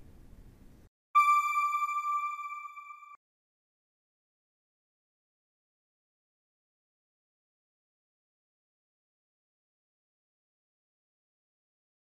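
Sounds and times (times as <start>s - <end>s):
electronic chime tone: 1.2s - 3.2s.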